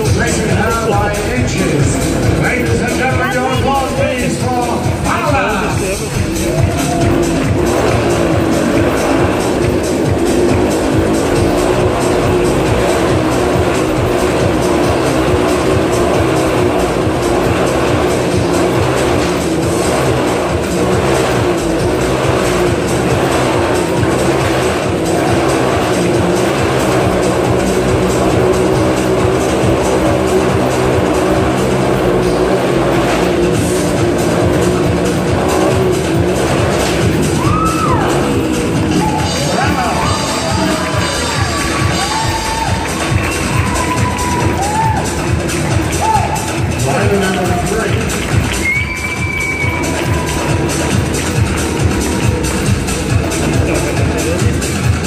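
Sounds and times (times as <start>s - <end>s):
loud show music: 0.0s - 55.0s
motorcycle engines revving: 0.0s - 55.0s.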